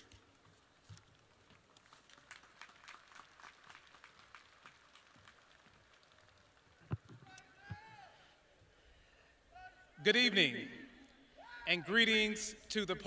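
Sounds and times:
audience applause: 1.6 - 7.0.

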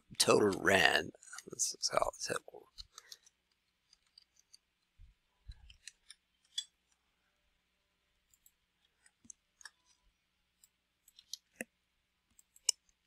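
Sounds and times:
computer keyboard and mouse clicks: 12.3 - 13.0.

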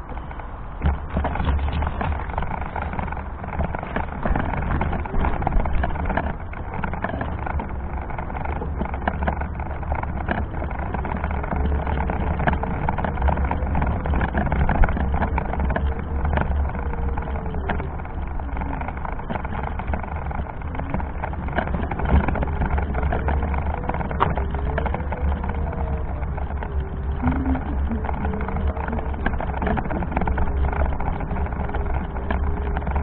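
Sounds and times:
faint motor whine: 0.0 - 33.0
wheelchair rolling rumble: 0.0 - 33.0.

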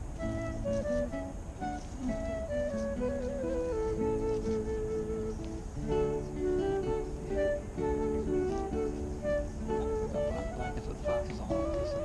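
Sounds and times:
slow instrumental music: 0.0 - 12.0.

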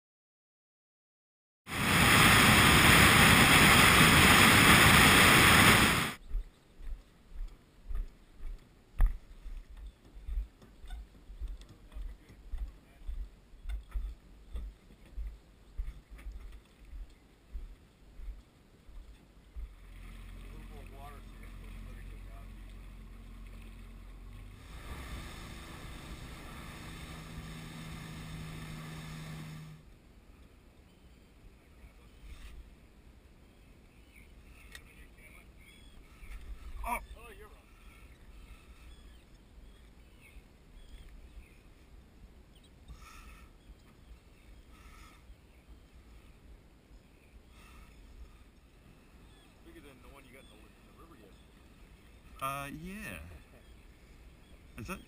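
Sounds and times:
soft low thumps: 6.2 - 19.8
outboard motor running: 19.6 - 29.9
car driving noise: 21.4 - 29.8.

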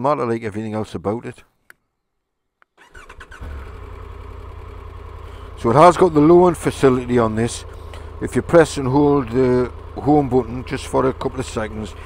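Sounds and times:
motorcycle engine starting and idling: 2.8 - 12.0.

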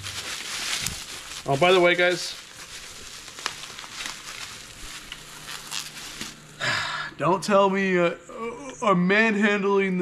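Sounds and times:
bubble wrap crinkling: 0.0 - 6.6.

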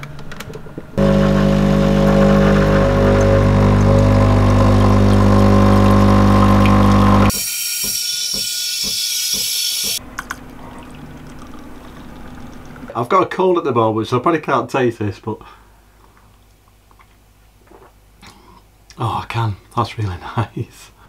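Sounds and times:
espresso machine pump humming: 1.0 - 10.0.

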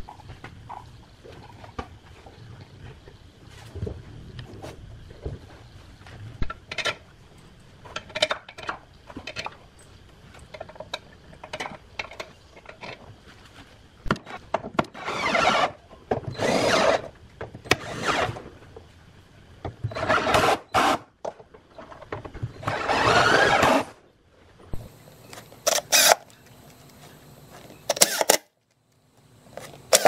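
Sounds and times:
cordless drill driving screws: 16.3 - 17.0, 17.7 - 18.4, 20.0 - 21.0, 22.6 - 23.9, 25.6 - 26.2, 27.9 - 28.4.

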